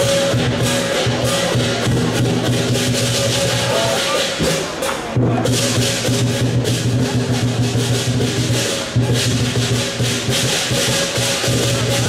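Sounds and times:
crashing cymbals: 0.0 - 12.0
large drum beating rapidly: 0.0 - 12.0.

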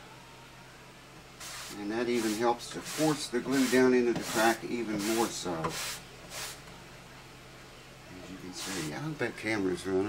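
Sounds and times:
cloth rag rubbing wood: 1.4 - 6.6, 8.6 - 9.0.

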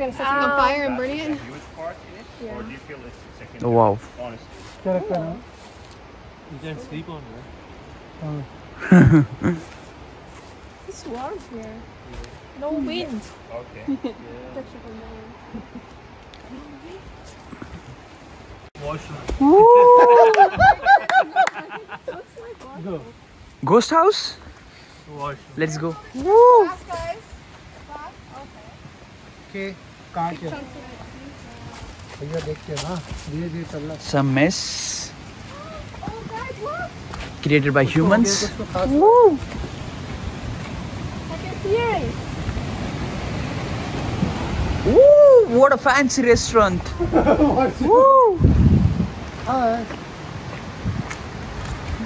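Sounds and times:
waterfall rushing: 18.7 - 48.5
person calling woooo: 19.4 - 20.6, 26.1 - 26.8, 38.9 - 39.4, 44.8 - 45.6, 47.8 - 48.4
wind rumbling on microphone: 38.5 - 52.0.

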